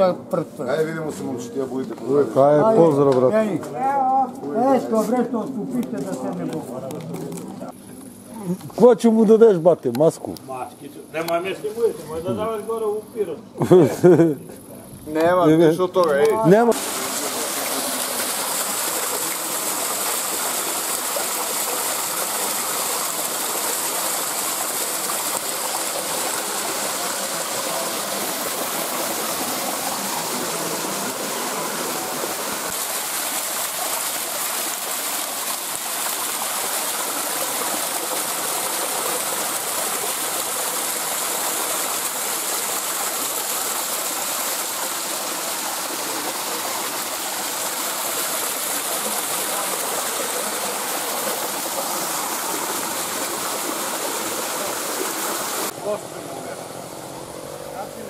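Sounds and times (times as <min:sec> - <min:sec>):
stream cascading over rocks: 0:16.5 - 0:58.0.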